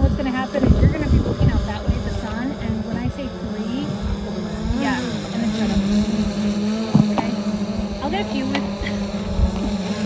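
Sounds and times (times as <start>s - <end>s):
drone propellers buzzing: 0.0s - 10.0s.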